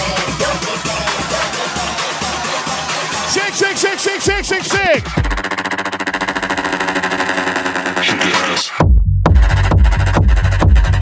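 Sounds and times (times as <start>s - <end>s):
stuttering synth chord: 2.6s - 8.2s.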